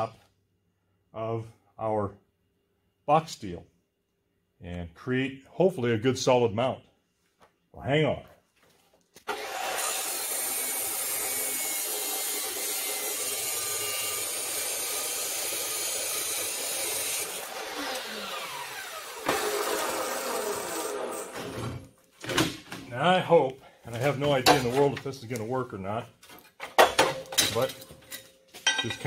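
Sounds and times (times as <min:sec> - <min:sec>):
chop saw grinding steel: 0:09.3 - 0:21.5.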